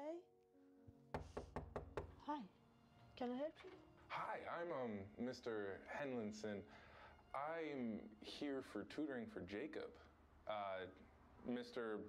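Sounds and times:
quiet music: 0:00.0 - 0:12.0
knocks on a door: 0:01.1 - 0:02.3.

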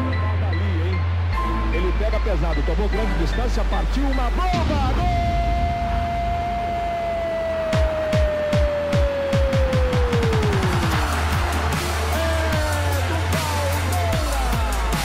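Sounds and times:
electronic music: 0:00.0 - 0:15.0.

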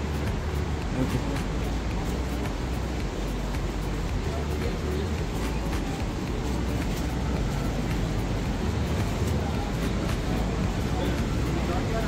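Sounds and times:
low rumbling outdoor noise: 0:00.0 - 0:12.0.

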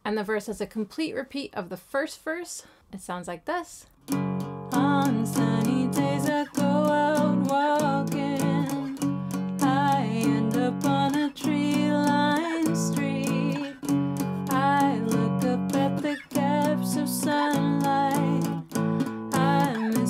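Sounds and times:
strummed acoustic guitar: 0:04.0 - 0:20.0
woman singing: 0:04.6 - 0:20.0.

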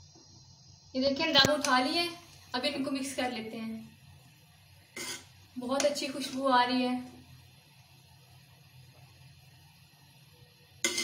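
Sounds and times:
rice stirred in metal pot: 0:04.0 - 0:09.3, 0:10.8 - 0:11.0
metal spoon scraping pot: 0:05.0 - 0:06.0.

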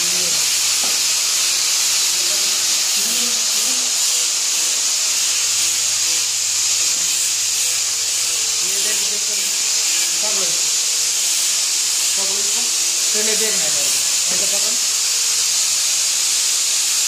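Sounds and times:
steady high-pitched hiss: 0:00.0 - 0:17.0.

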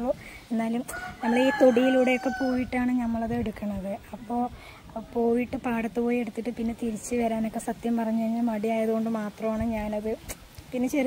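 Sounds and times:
woman talking: 0:00.0 - 0:11.0
rooster crowing: 0:00.9 - 0:02.8.

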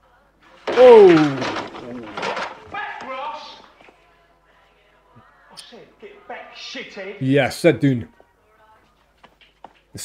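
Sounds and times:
man exclaiming oh: 0:00.7 - 0:01.5.

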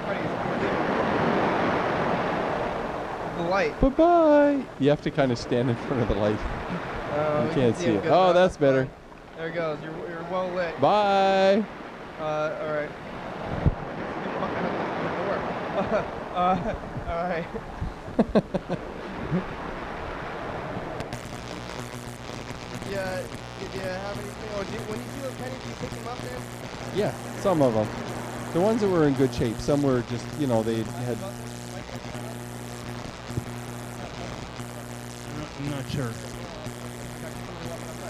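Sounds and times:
low electrical buzz: 0:00.0 - 0:38.0
steady hiss: 0:00.0 - 0:38.0.

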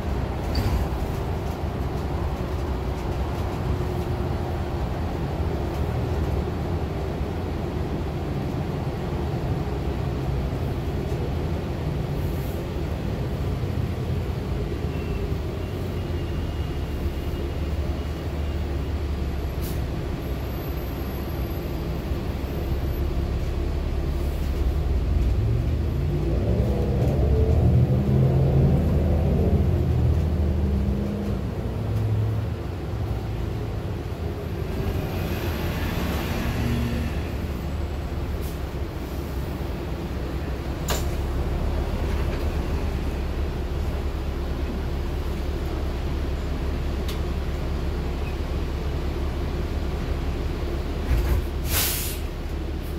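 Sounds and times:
bus engine and road rumble: 0:00.0 - 0:52.9
bus air brake hiss: 0:19.6 - 0:19.9, 0:51.5 - 0:52.9.

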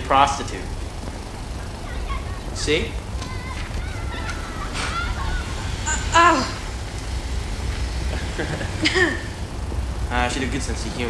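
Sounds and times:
steady low rumble: 0:00.0 - 0:11.0
soft laughter: 0:03.3 - 0:06.2, 0:08.0 - 0:09.5.

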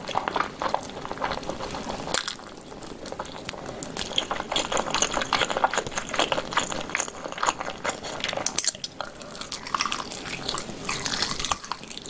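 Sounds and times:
person chewing and sucking meat: 0:00.0 - 0:12.0.

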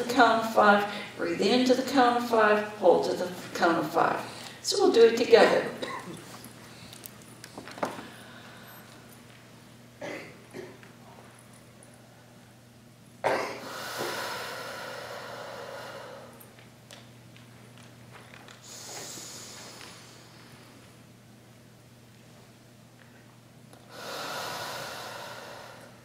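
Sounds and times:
slow breathing close to microphone: 0:13.7 - 0:16.4, 0:23.9 - 0:26.0.

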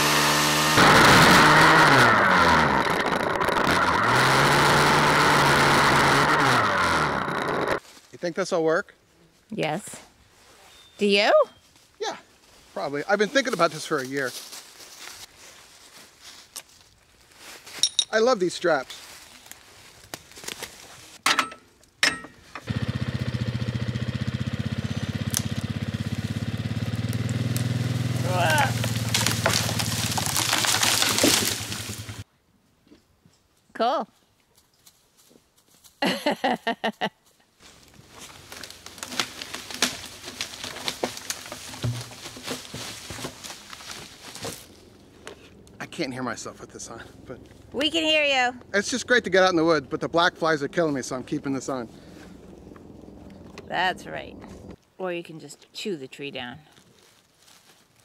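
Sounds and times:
crunching in dry leaves: 0:07.8 - 0:08.2, 0:11.6 - 0:17.8, 0:18.6 - 0:21.2, 0:24.7 - 0:32.2, 0:37.6 - 0:45.8, 0:56.6 - 0:58.0.

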